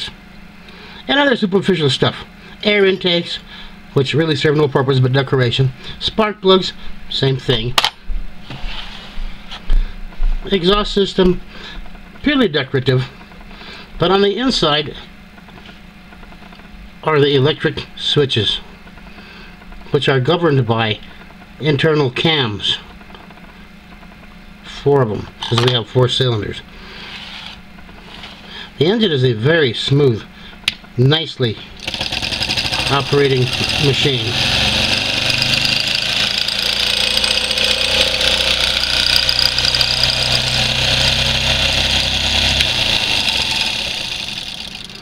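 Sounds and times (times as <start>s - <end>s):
low hum: 30.1s - 45.0s
small electric engine whirring: 31.8s - 45.0s
person speaking: 32.7s - 34.7s.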